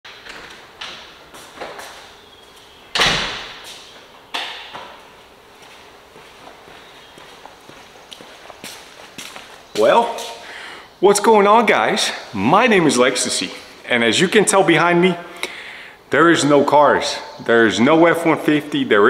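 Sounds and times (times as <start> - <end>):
footsteps on concrete floor: 3.6 - 10.5
man speaking: 9.7 - 15.4, 16.1 - 19.0.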